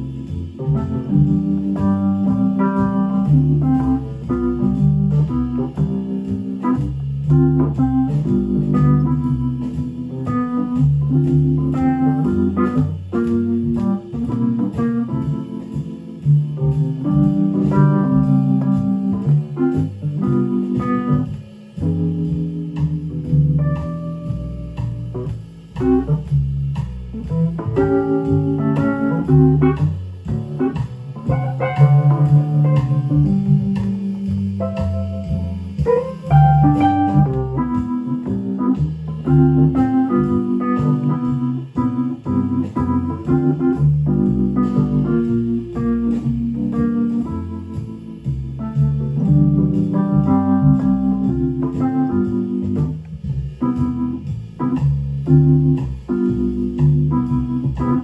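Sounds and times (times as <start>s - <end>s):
electric piano playing jazz chords: 0.0s - 58.0s.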